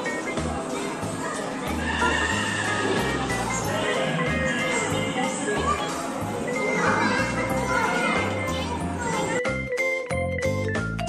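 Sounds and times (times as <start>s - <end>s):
horse whinny: 1.7s - 3.4s
background music with low beat: 9.4s - 11.0s.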